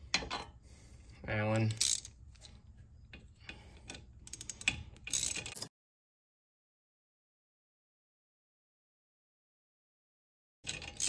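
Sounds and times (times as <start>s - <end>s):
wrench clicking and ratcheting: 1.6s - 2.2s, 3.8s - 5.6s.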